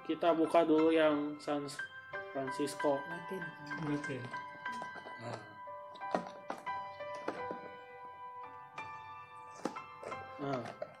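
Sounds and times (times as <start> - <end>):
background music of sustained notes: 0.0 - 11.0.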